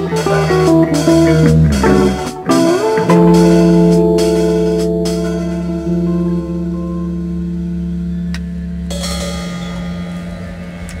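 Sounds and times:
ringing rock drone notes: 0.0 - 11.0
sharp hit: 1.9 - 11.0.

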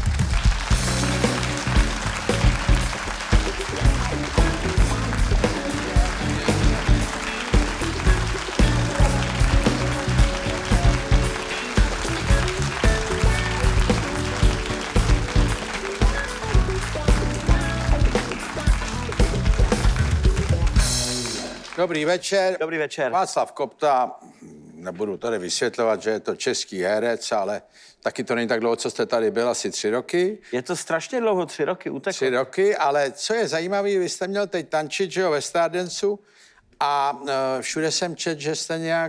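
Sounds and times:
live band playing upbeat music: 0.0 - 21.8.

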